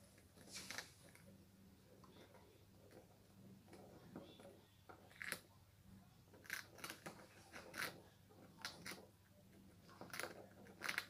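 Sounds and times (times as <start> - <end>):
hamster nibbling and chewing: 0.0 - 11.0.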